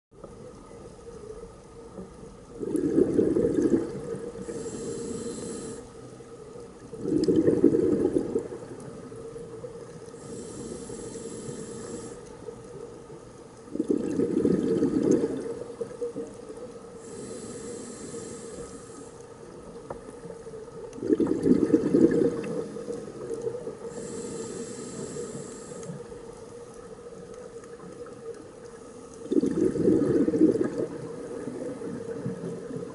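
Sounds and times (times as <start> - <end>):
faint steady hum: 0.2 - 32.9
exhaled bubbles underwater: 1.8 - 5.8, 6.8 - 12.1, 13.6 - 18.8, 19.4 - 32.9
regulator inhale hiss: 4.3 - 6.2, 10.0 - 12.8, 16.9 - 20.0, 22.4 - 26.6.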